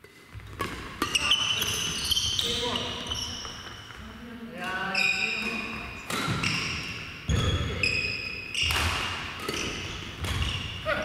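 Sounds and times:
racket striking shuttlecock: 0:00.4 - 0:02.0, 0:05.4 - 0:07.1, 0:08.6 - 0:10.8
shoes squeaking on wooden floor: 0:01.1 - 0:04.1.

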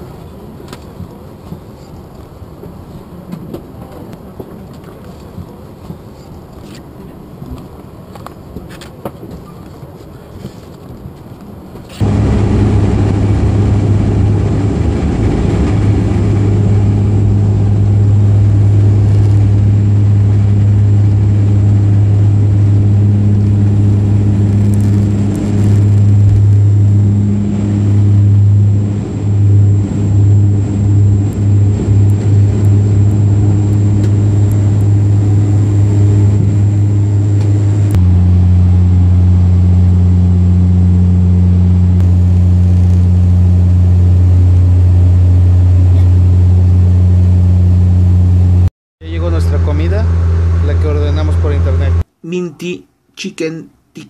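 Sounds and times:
propeller drone in cabin: 0:00.0 - 0:52.1.

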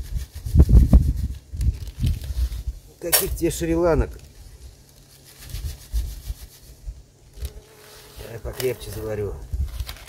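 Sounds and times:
foil packet rustling: 0:07.4 - 0:10.0.

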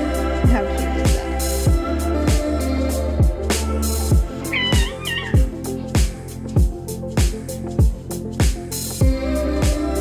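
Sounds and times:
music with thudding beat: 0:04.1 - 0:09.8
cat meowing: 0:04.4 - 0:05.6.

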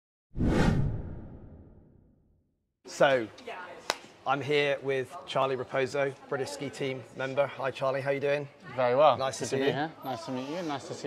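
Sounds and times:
whoosh: 0:00.4 - 0:02.2.

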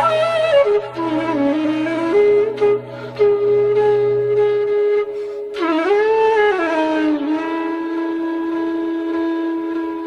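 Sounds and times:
flute holding long note: 0:00.0 - 0:10.0.

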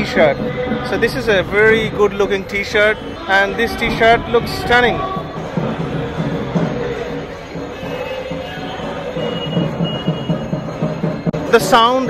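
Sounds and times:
barrel drums beaten with sticks: 0:00.0 - 0:11.8.

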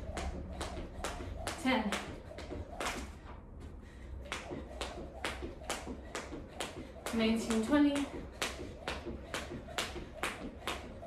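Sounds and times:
jump rope slapping floor: 0:00.0 - 0:03.4, 0:04.2 - 0:11.0.

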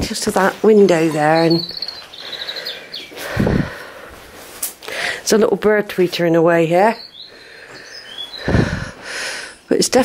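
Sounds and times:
small bird chirping: 0:01.0 - 0:03.7, 0:06.8 - 0:09.0.

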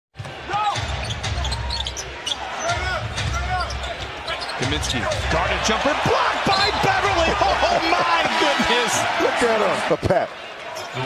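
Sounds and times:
sneakers squeaking: 0:00.2 - 0:05.2
arena crowd murmur: 0:01.6 - 0:11.0.

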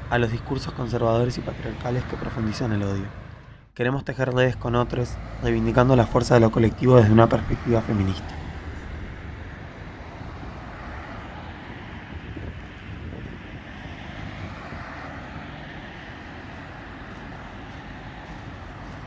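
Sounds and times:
distant traffic hum: 0:00.0 - 0:19.0.

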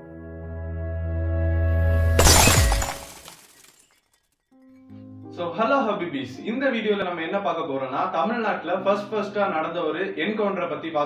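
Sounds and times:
music: 0:00.0 - 0:02.2, 0:04.5 - 0:11.0
light bulb glass shattering: 0:02.2 - 0:04.3.

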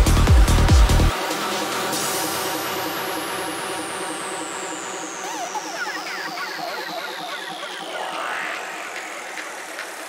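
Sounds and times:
psytrance synth texture: 0:00.0 - 0:10.0.

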